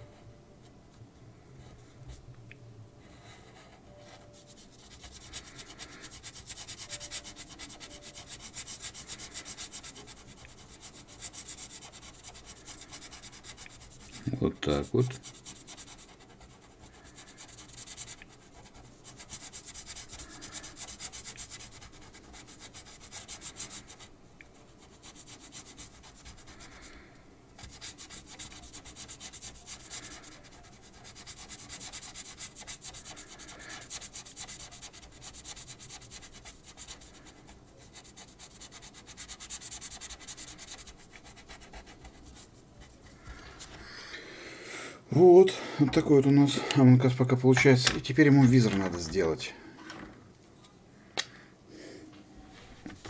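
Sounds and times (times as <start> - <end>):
felt-tip pen rubbing on paper: 3.4 - 26.9, 27.6 - 43.8.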